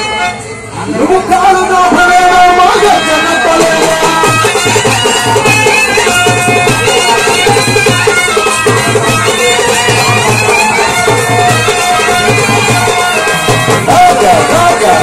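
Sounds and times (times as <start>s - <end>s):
repeating drum beat: 2.9s - 15.0s
saxophone melody: 2.9s - 15.0s.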